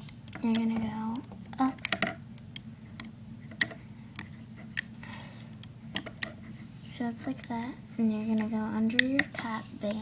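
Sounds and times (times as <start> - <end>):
hook tapping plastic pegs: 0.0 - 4.9, 5.6 - 6.4, 8.9 - 9.5
low steady hum: 0.0 - 10.0.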